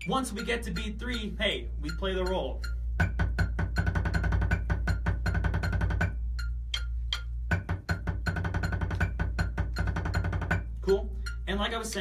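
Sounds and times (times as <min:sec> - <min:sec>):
drumsticks on practice pad: 0:00.4 - 0:12.0.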